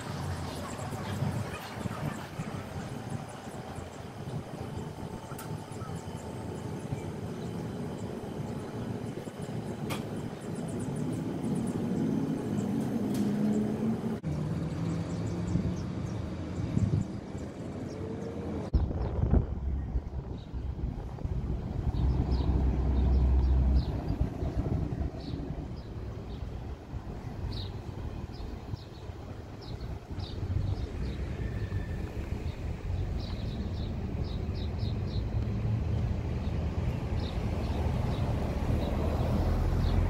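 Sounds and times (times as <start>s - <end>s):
hum of passing vehicles: 0.0s - 40.0s
deep low rumble: 18.7s - 26.0s.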